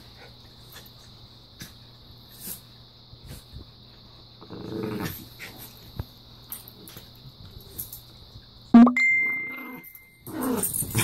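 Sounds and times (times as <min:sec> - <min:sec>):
dog growling: 0:04.4 - 0:05.3.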